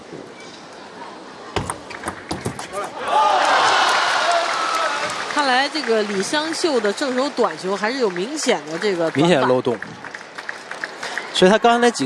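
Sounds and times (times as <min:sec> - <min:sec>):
crowd cheering and applause: 0:02.7 - 0:12.0.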